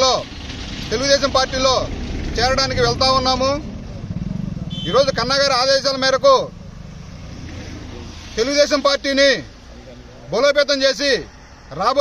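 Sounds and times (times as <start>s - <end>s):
man talking: 0.0s - 0.3s, 0.9s - 3.7s, 4.8s - 6.5s, 8.0s - 12.0s
vehicle engine rumbling: 0.0s - 12.0s.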